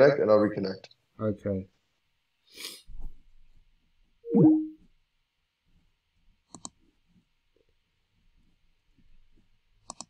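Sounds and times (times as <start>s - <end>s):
falling electronic tone: 4.3s - 4.8s.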